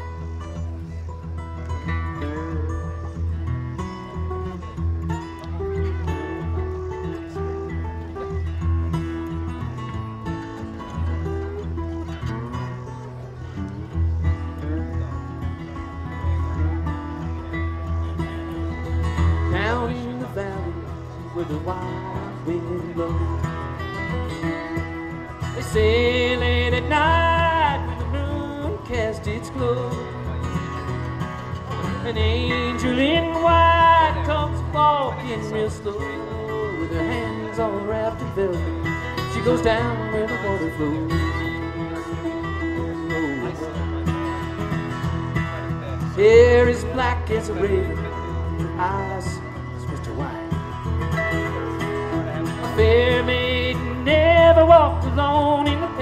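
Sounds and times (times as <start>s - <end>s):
bluegrass band playing: 0.0s - 56.0s.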